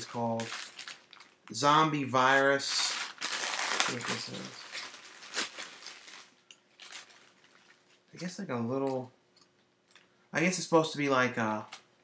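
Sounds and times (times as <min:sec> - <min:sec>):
handling noise of toy packaging: 0:00.0 - 0:08.2.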